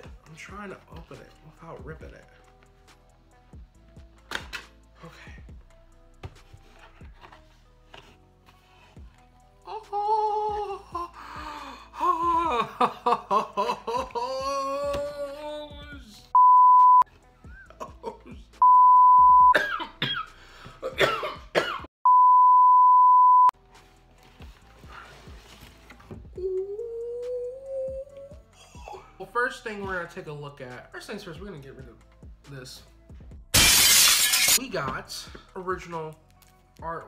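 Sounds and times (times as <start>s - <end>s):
man exclaiming excitedly: 14.3s - 16.2s
high-pitched censor bleeps: 16.4s - 17.0s, 18.6s - 19.5s, 22.1s - 23.5s
man coughing noises: 19.5s - 21.9s.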